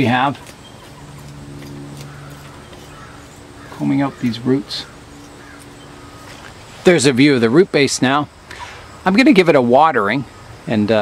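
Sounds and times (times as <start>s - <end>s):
metal fork scratching soil: 0.0s - 4.4s
steady low hum: 0.0s - 11.0s.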